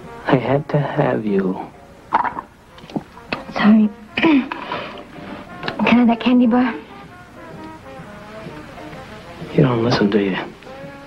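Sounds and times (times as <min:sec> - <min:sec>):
low held background music: 0:00.0 - 0:11.0.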